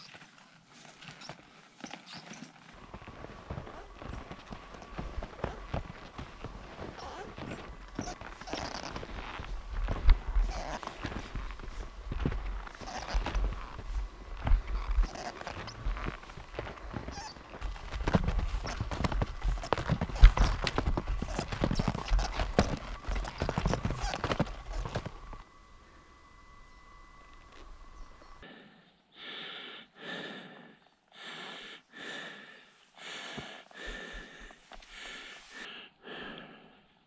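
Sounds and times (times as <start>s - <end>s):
footsteps crunching in snow: 0.0s - 25.4s
heavy rhythmic breathing: 2.8s - 25.4s, 28.4s - 37.0s
wind rumbling on microphone: 2.8s - 25.4s.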